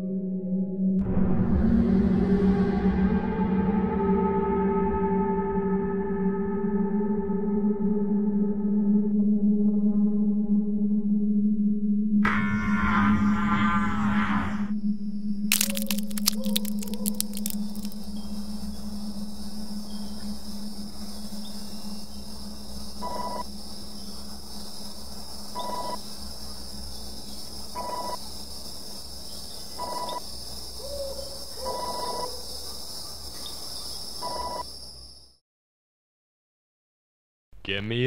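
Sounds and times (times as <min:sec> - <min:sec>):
brief crackle: 0:15.5 - 0:18.1
steady low hum: 0:18.0 - 0:29.6.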